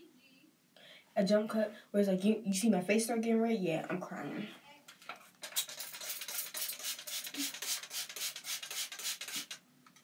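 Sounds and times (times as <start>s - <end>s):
spray bottle hissing sprays: 5.4s - 9.6s.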